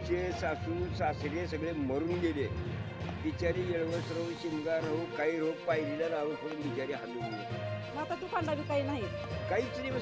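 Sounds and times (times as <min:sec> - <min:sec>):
background music: 0:00.0 - 0:10.0
man speaking: 0:09.5 - 0:10.0.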